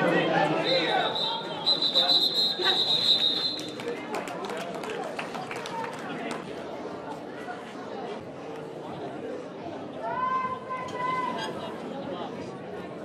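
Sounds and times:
indistinct chatter: 0.0s - 13.0s.

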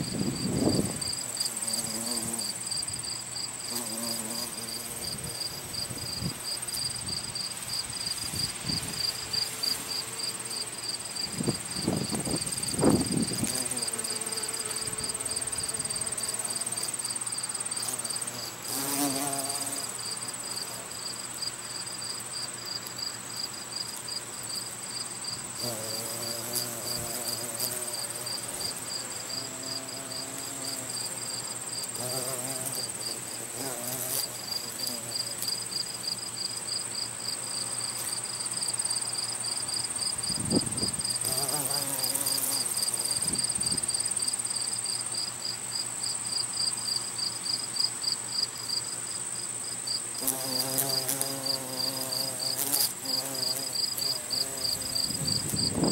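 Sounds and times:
bee buzzing: 0.0s - 21.2s, 25.3s - 38.9s, 39.6s - 44.3s, 50.1s - 55.9s
crickets chirping: 0.0s - 55.9s
high-pitched insect trill: 0.0s - 55.9s.

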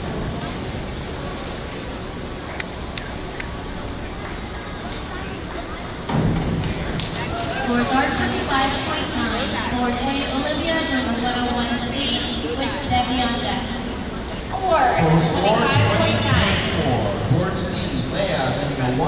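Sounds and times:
indoor pool hall hum: 0.0s - 19.0s
voices: 0.4s - 19.0s.

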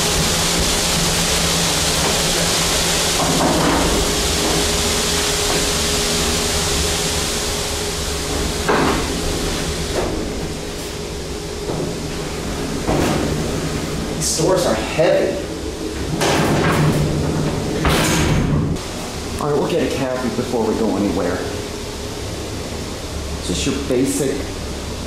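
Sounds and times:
heavy steel doors sliding: 0.0s - 18.8s
steel doors banging shut: 16.0s - 18.8s.

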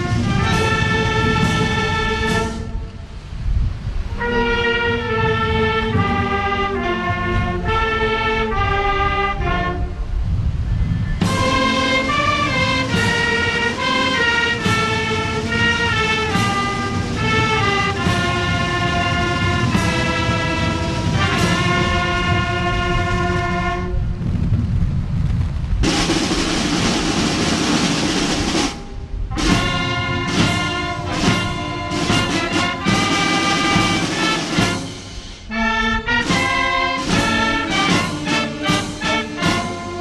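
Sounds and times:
roll of drums and cymbals: 0.0s - 2.8s, 10.5s - 24.5s, 25.4s - 35.6s, 36.2s - 40.0s
brass band playing: 0.0s - 3.2s, 4.1s - 10.2s, 11.2s - 24.1s, 25.8s - 40.0s
low rumble: 0.0s - 4.2s, 8.5s - 12.8s, 16.8s - 31.0s.

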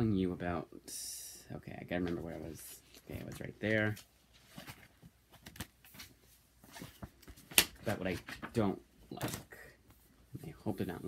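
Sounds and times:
book rustles and taps: 3.0s - 9.5s.

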